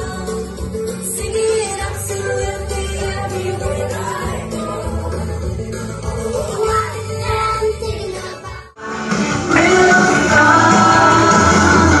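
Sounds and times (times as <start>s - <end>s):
children singing a song: 1.1s - 12.0s.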